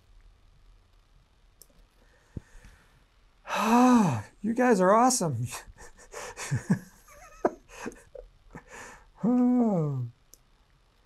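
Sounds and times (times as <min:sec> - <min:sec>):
small clicks: 0:00.9 - 0:02.5, 0:10.2 - 0:11.0
man breathing: 0:02.0 - 0:04.3, 0:05.7 - 0:06.6, 0:07.7 - 0:09.3
wordless vocal sound falling in pitch: 0:09.2 - 0:10.1.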